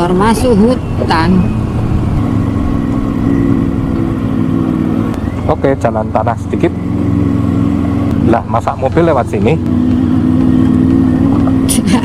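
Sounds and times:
motorcycle engine running: 0:00.0 - 0:12.0
road rumble: 0:00.0 - 0:12.0
wind: 0:00.0 - 0:12.0.

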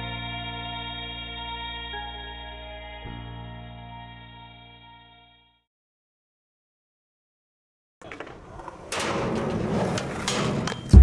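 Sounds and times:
skateboard wheels rolling on concrete: 0:08.0 - 0:11.0.

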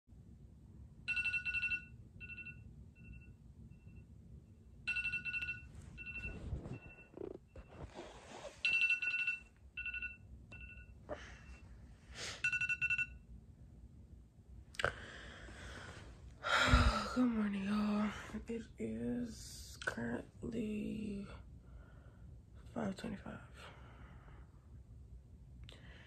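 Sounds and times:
phone alarm beeping: 0:04.9 - 0:07.9, 0:08.6 - 0:11.6, 0:12.4 - 0:13.2
rustling movement: 0:05.5 - 0:09.2.

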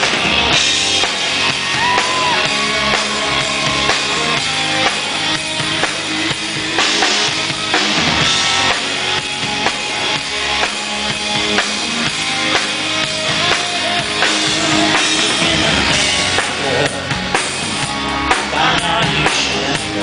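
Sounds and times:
drum kit steady beat: 0:00.0 - 0:20.0
electric guitars: 0:00.0 - 0:20.0.

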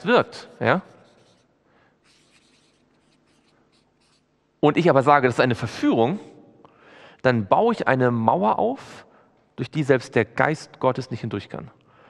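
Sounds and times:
marker writing on paper: 0:00.1 - 0:04.3.

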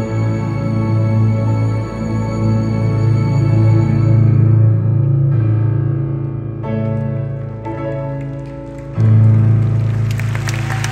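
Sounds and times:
grand piano and string orchestra: 0:00.0 - 0:10.9.

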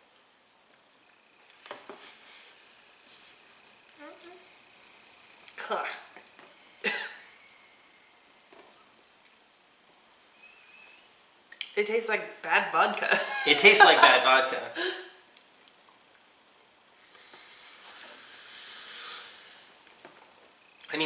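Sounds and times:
people inhaling and breathing out: 0:01.5 - 0:05.6, 0:14.8 - 0:15.2, 0:17.0 - 0:19.8
short cough: 0:06.8 - 0:07.3.

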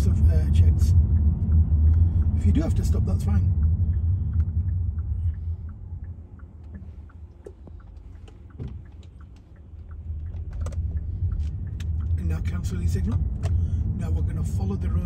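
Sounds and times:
low road rumble: 0:00.0 - 0:15.0
turn signal ticking: 0:00.0 - 0:15.0.

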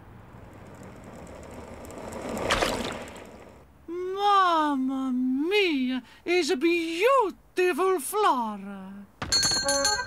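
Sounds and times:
car tyre rolling along street: 0:00.0 - 0:03.9.

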